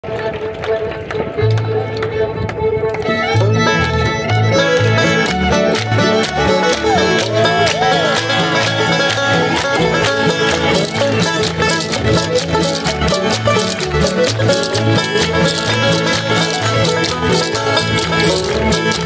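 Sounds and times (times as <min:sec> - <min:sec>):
bowed fiddle: 0:00.0 - 0:19.0
string band playing upbeat tune: 0:00.0 - 0:19.0
bouncing bass beat: 0:03.2 - 0:19.0.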